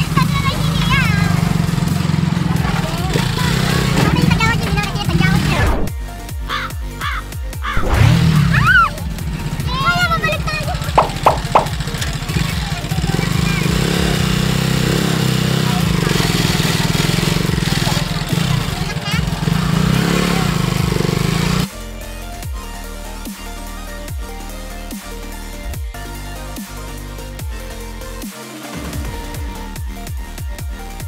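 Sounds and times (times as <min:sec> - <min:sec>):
girls talking and laughing: 0:00.0 - 0:01.5, 0:02.6 - 0:05.6, 0:08.0 - 0:14.4, 0:17.4 - 0:21.1
small vehicle engine running: 0:00.0 - 0:05.9, 0:07.8 - 0:21.7
electronic dance music: 0:07.7 - 0:14.0.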